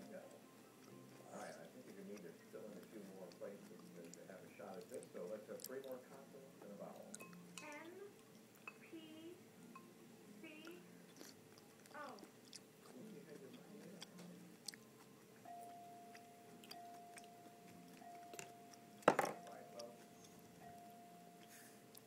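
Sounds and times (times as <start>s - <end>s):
quiet background voices: 0.0s - 8.2s
toddler chewing: 0.4s - 6.1s, 10.6s - 19.0s.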